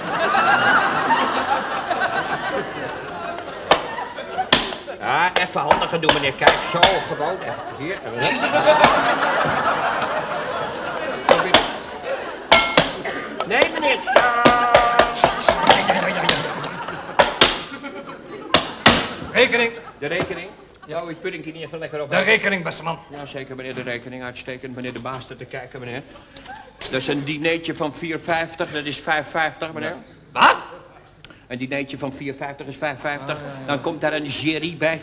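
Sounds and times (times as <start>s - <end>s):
tableware knocking on table: 12.5s - 16.5s.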